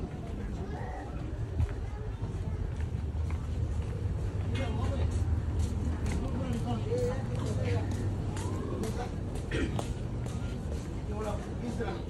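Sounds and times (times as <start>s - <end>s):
steady low rumble: 0.0s - 11.6s.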